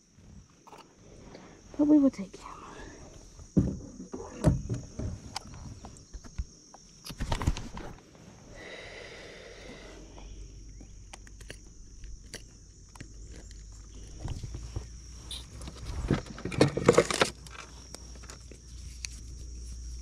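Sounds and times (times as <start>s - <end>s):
rustling and knocking: 3.4s - 6.5s.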